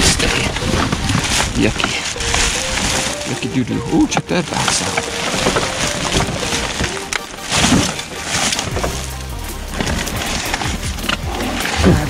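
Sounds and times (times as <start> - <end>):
music with low bass: 0.0 - 12.0
plastic bags and boxes rustling: 0.0 - 12.0.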